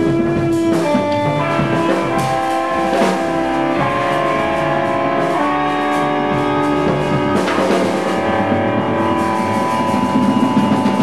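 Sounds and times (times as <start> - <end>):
upright bass: 0.0 - 10.2
busy drumming: 0.0 - 11.0
electric guitar: 0.0 - 11.0.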